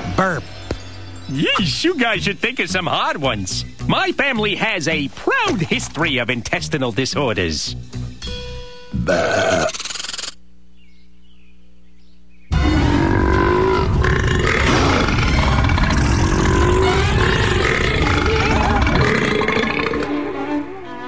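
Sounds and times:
music: 0.0 - 9.1, 12.5 - 21.0
cartoon long burp: 8.9 - 9.9, 12.5 - 20.2.

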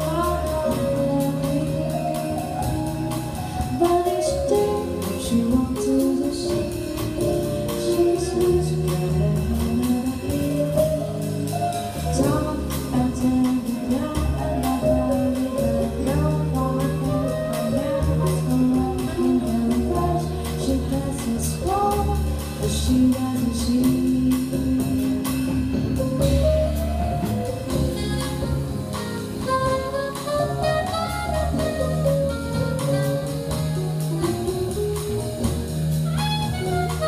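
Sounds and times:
woman singing into a microphone: 0.0 - 25.4
drum kit beat: 0.0 - 37.0
upright bass: 0.0 - 37.0.

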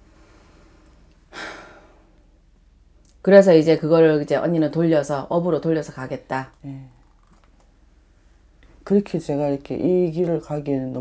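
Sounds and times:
person sighing: 1.3 - 2.0.

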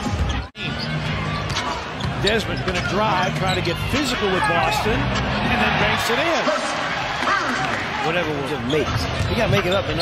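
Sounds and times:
crowd noise: 0.0 - 10.0.

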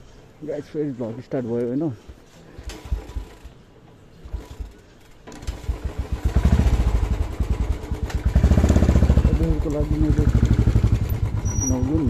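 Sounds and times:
motorcycle engine running: 2.6 - 3.6, 5.4 - 12.0.

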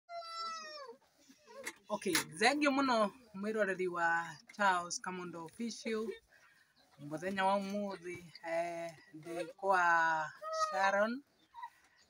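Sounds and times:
high meow-like cry: 0.1 - 0.9.

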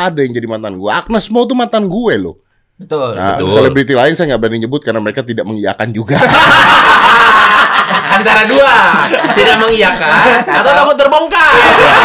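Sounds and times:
men laughing loudly: 6.1 - 12.0.

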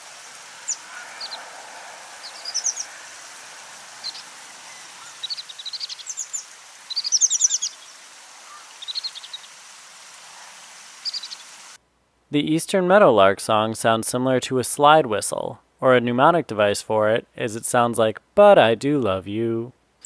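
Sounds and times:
bird giving high pip calls: 0.0 - 9.6, 11.0 - 11.6
steady background hiss: 0.0 - 20.0.

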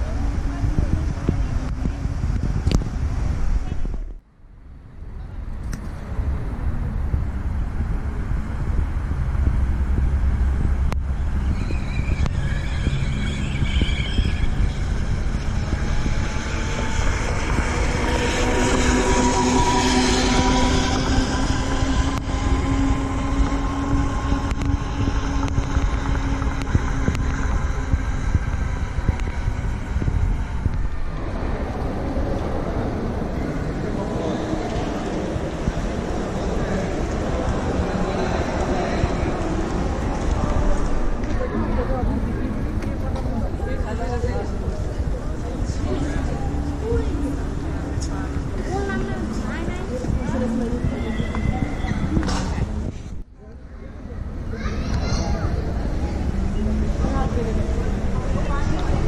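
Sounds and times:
low rumble: 0.0 - 59.0.

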